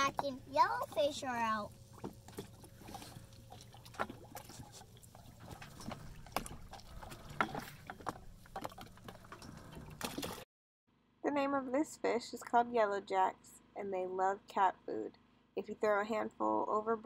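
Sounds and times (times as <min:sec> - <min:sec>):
low steady rumble: 0:00.0 - 0:10.1
water lapping against a hull: 0:00.0 - 0:10.4.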